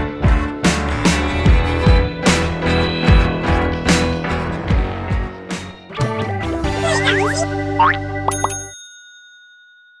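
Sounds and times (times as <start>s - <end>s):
cartoon logo jingle: 6.8s - 8.6s
bell dings: 8.3s - 10.0s.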